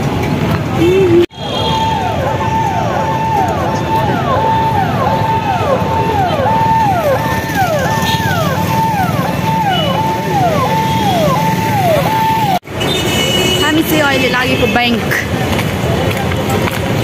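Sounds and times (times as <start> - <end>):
street traffic rumble: 0.0 - 17.0.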